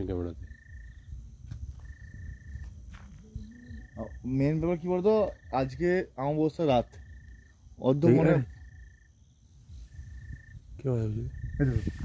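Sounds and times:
cricket trilling: 0.0 - 12.0.

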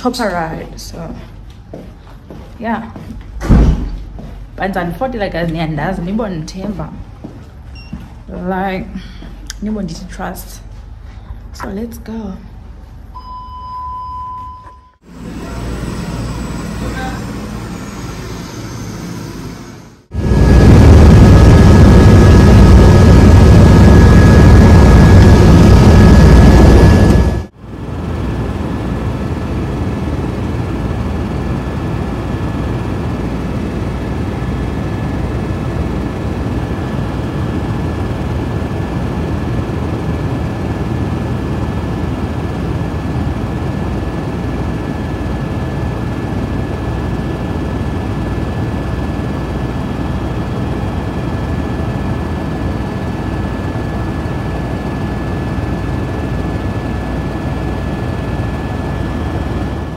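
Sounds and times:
helicopter drone from inside cabin: 5.8 - 59.9
high-pitched whine: 14.7 - 42.4.

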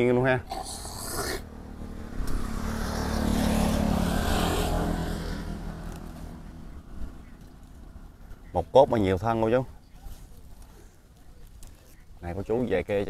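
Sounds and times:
motor vehicle passing by: 0.5 - 8.4.

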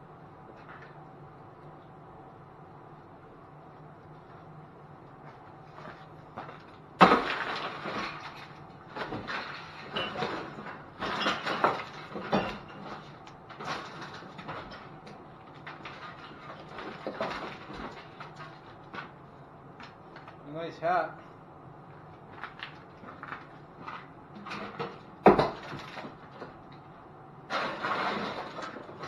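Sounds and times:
objects clattering and scraping: 5.3 - 19.2, 22.3 - 26.9, 27.5 - 29.0.

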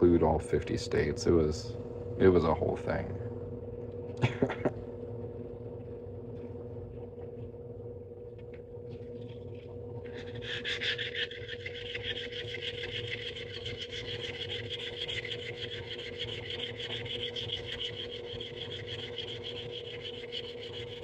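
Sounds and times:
steady low hum: 0.0 - 21.0
ring rubbing on sanding block: 10.1 - 21.0.

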